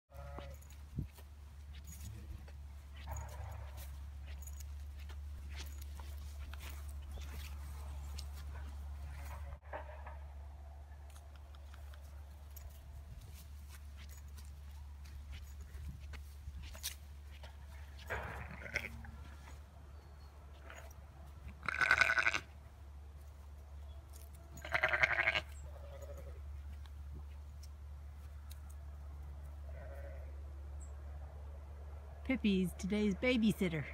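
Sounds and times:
sheep bleating: 0.1s - 0.7s, 18.4s - 19.1s, 21.6s - 22.5s, 24.6s - 26.4s, 29.7s - 30.3s
footsteps on grass: 0.2s - 9.5s, 12.3s - 19.6s.

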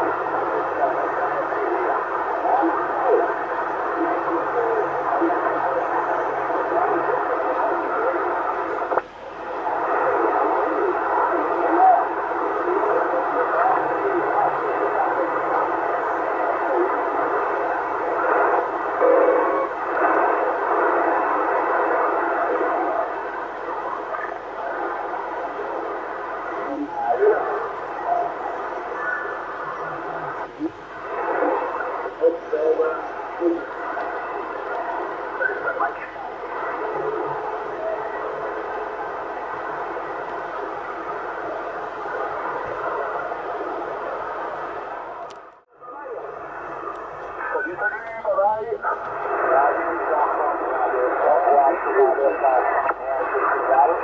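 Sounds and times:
faint garbled radio voices: 0.0s - 54.0s
radio band noise: 0.0s - 54.0s.

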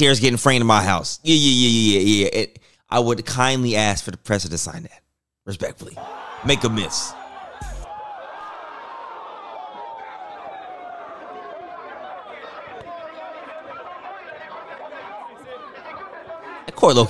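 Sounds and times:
crowd chattering and calling out: 6.0s - 17.0s.

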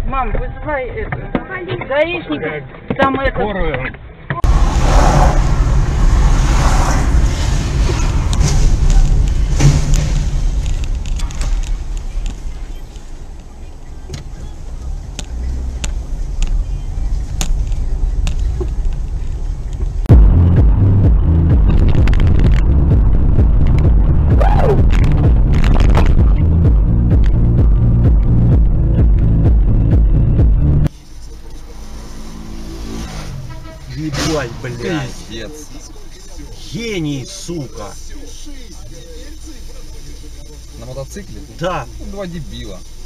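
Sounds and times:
car road and engine noise: 0.0s - 43.0s.

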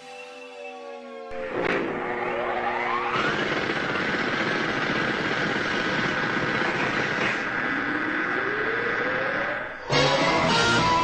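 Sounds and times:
rising pitch sweep: 0.0s - 3.4s, 7.6s - 11.0s.

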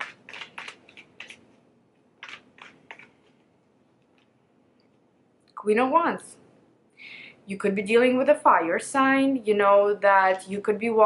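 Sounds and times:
cards clicking and rustling: 0.0s - 1.6s, 2.2s - 3.4s.

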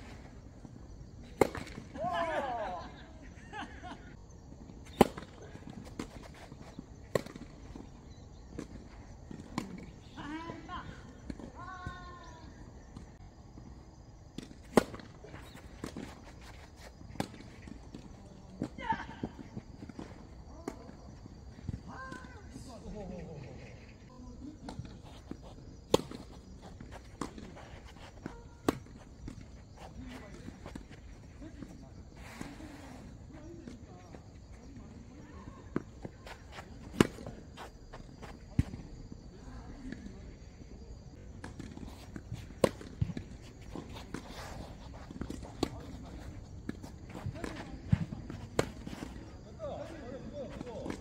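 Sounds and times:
tennis ball bouncing: 25.3s - 29.2s
tennis ball struck and bouncing: 25.9s - 26.3s
racket hitting tennis ball: 25.9s - 29.0s.

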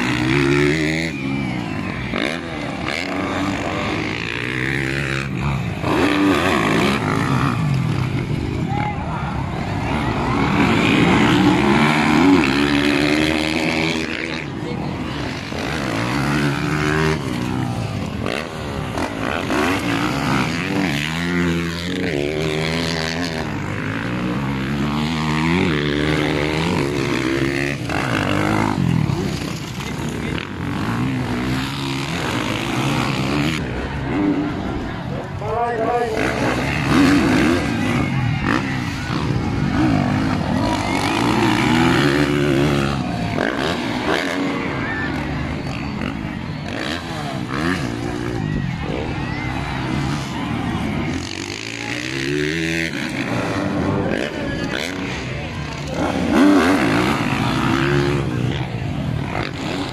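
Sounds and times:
dirt bike engines revving: 0.0s - 59.9s.

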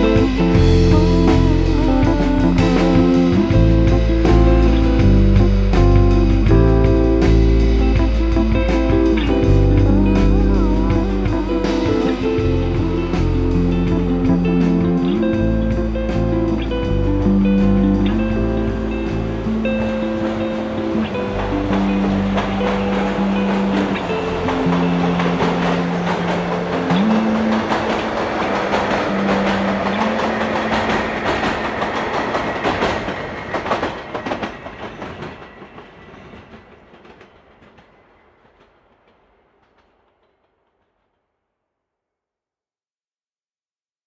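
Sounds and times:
slow song: 0.0s - 34.4s
train wheels clattering on track: 17.2s - 40.8s.

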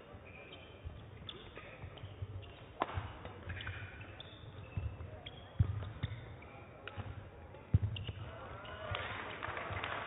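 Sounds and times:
racket hitting shuttlecock: 1.2s - 4.9s, 5.5s - 8.2s.

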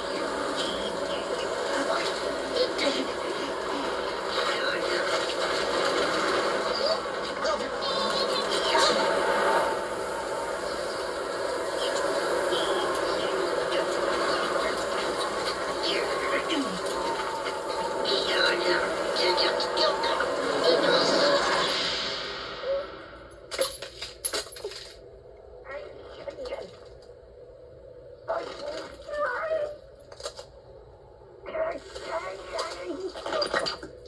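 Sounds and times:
ice cracking and tinkling: 0.0s - 21.8s, 23.3s - 25.1s
blizzard wind: 0.0s - 34.0s.

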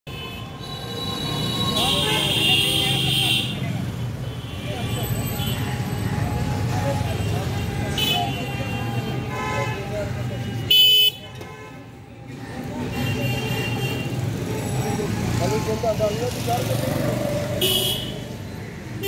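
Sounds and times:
road traffic: 0.0s - 19.0s
vehicle horns honking: 0.1s - 3.6s, 4.2s - 12.0s, 17.5s - 18.3s.

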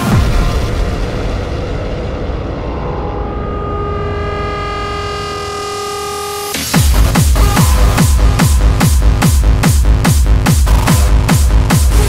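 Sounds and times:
low rumbling bass: 0.0s - 12.0s
held synth chord: 2.2s - 6.8s
hard pitch-dropping kick drums: 5.2s - 12.0s.

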